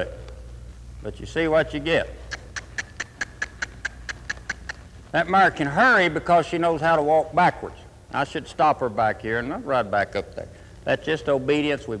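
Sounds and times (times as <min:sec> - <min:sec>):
horse hoofbeats on dirt: 0:02.2 - 0:07.2.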